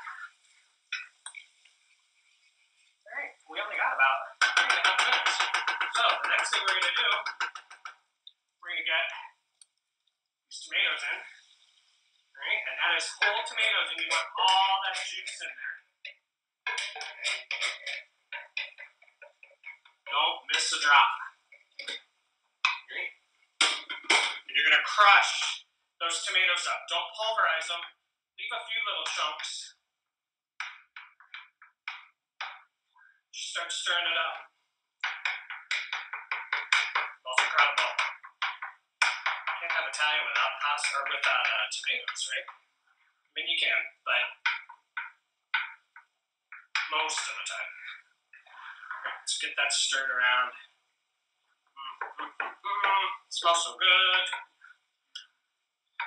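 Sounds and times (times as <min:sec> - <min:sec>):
man talking: 0:03.5 - 0:07.6, 0:08.6 - 0:09.2, 0:10.5 - 0:11.4, 0:12.4 - 0:15.7, 0:16.7 - 0:18.0, 0:20.1 - 0:22.0, 0:22.7 - 0:29.7, 0:33.4 - 0:34.4, 0:35.0 - 0:42.5, 0:43.4 - 0:44.6, 0:46.6 - 0:50.6, 0:51.8 - 0:54.4
wooden spoon crushing tomatoes in pan: 0:04.4 - 0:08.0.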